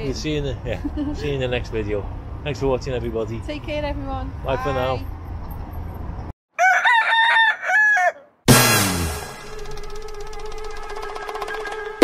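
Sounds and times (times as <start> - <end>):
rooster crowing: 6.5 - 8.4.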